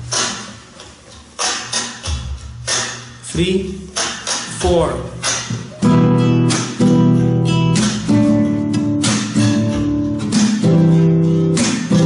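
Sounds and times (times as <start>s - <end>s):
flamenco guitar strumming: 0.0s - 12.0s.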